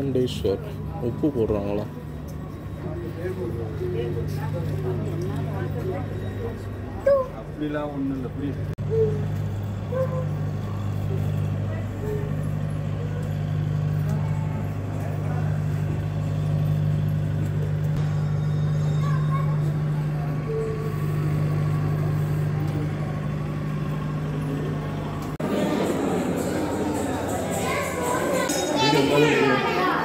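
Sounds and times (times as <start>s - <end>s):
faint voices: 0.0s - 17.3s, 18.8s - 30.0s
steady low hum: 0.0s - 28.8s.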